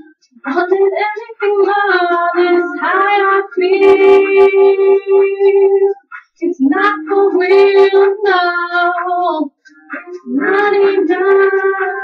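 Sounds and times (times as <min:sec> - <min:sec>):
high voice singing: 0:00.0 - 0:12.0.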